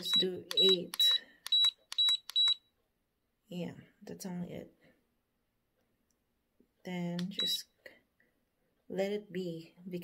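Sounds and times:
button clicks: 0.0 - 2.6, 7.2 - 7.6.

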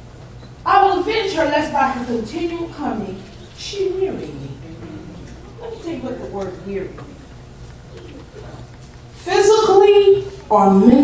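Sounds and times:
steady low hum: 0.0 - 11.0
faint low voice murmur: 4.2 - 8.7.

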